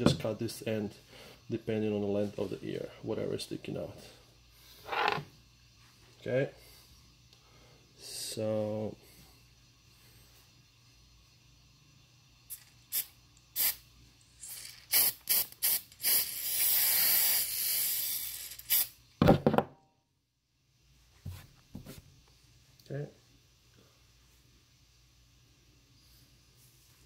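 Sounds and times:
aerosol spray can hissing: 0:12.4 - 0:19.0.

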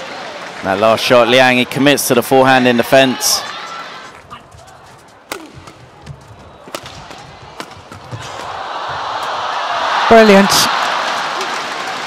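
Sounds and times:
crowd noise: 0:00.0 - 0:12.0
footwork thuds on court: 0:04.3 - 0:09.4
rackets striking shuttlecock: 0:04.9 - 0:09.4.

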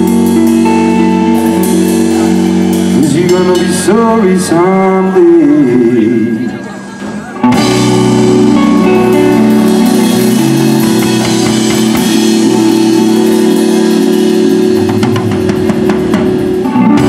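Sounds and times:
blues-rock band playing: 0:00.0 - 0:17.0
distorted electric guitars: 0:00.0 - 0:17.0.

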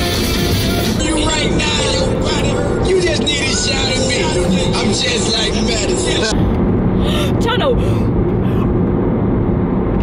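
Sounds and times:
song on car stereo: 0:00.0 - 0:06.7
car road and engine noise: 0:00.0 - 0:10.0
woman talking: 0:07.1 - 0:08.1.

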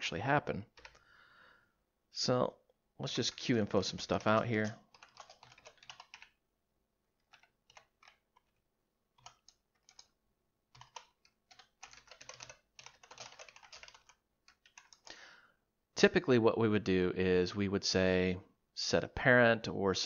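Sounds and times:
typing on computer keyboard: 0:00.7 - 0:01.0, 0:03.2 - 0:06.4, 0:07.2 - 0:15.1.

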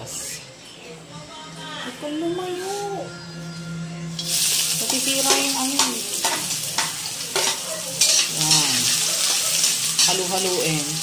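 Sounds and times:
spatula scraping a wok: 0:04.2 - 0:10.5
onions sizzling in hot oil: 0:04.2 - 0:11.0.

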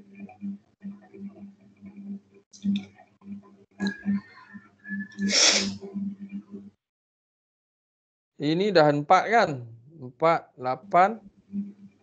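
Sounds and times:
faint pulsing low hum: 0:09.6 - 0:12.0.

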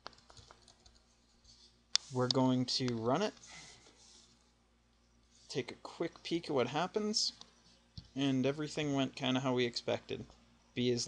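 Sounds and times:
computer keyboard clicks: 0:00.0 - 0:01.0.

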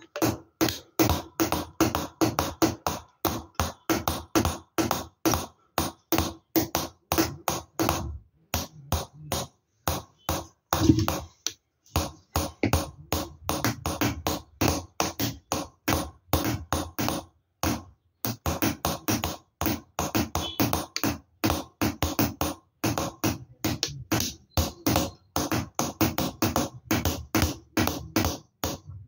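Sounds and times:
hammer tapping steel chisel: 0:00.0 - 0:29.0.

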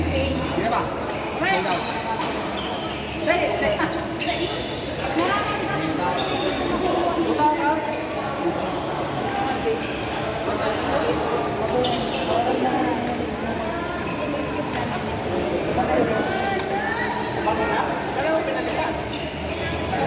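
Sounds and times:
players talking: 0:00.0 - 0:20.0.

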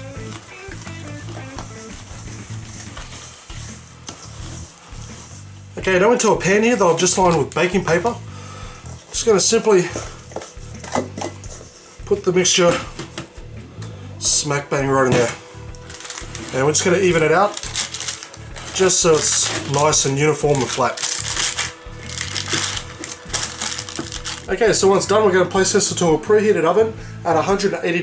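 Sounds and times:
soft background music: 0:00.0 - 0:28.0
wooden spoon scraping metal bowl: 0:01.4 - 0:05.5, 0:15.2 - 0:24.5
baking paper crinkling: 0:15.7 - 0:24.8.

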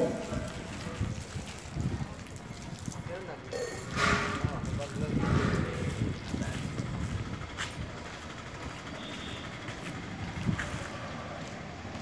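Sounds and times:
roadside background noise: 0:00.0 - 0:12.0.

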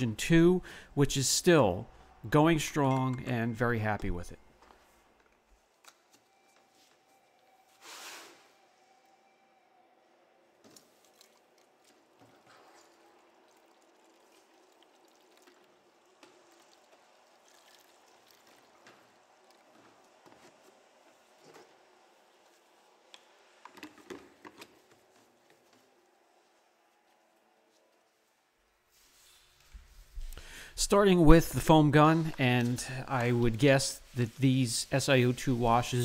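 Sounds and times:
water pouring into plastic bottle: 0:10.8 - 0:19.6.

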